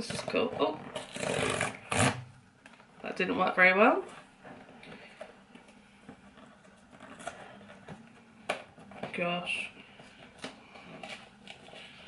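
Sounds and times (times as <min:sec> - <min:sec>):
cardboard box scratching and tearing: 0:00.0 - 0:02.3.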